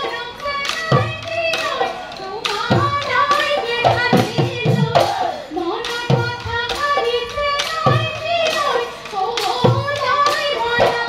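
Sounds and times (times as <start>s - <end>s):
dhol drum strokes: 0.0s - 11.0s
group singing: 0.0s - 11.0s.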